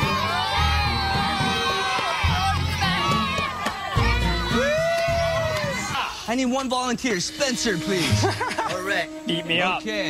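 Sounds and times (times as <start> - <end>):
children shouting and cheering: 0.0 - 6.3.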